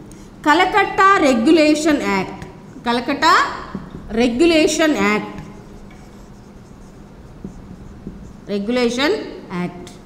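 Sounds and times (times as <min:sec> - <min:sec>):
marker writing on whiteboard: 0:03.7 - 0:09.0.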